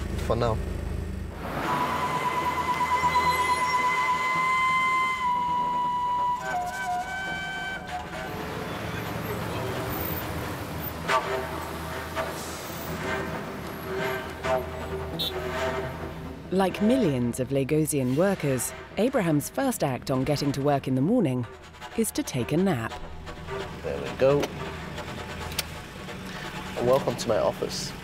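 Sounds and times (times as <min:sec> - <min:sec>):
idling traffic: 0:00.0 - 0:04.2, 0:07.8 - 0:28.0
long car horn honk: 0:15.1 - 0:15.4
short horn toots: 0:15.1 - 0:15.5
second car horn: 0:15.2 - 0:15.4.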